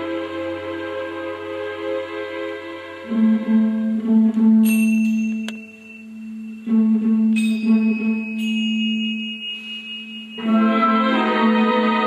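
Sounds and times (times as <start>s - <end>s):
orchestral music: 0.0s - 9.2s, 10.3s - 12.0s.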